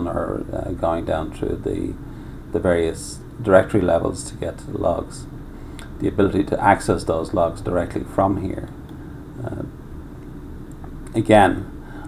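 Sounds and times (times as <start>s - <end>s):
steady low hum: 0.0s - 12.0s
man's low hesitation: 9.2s - 9.8s.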